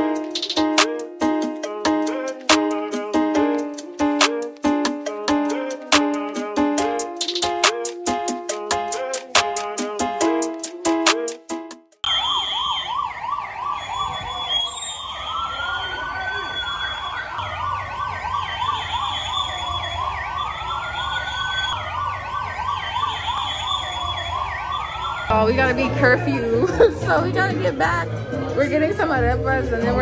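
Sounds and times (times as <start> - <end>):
police siren yelp: 12.0 - 25.3
police siren wail: 12.0 - 26.1.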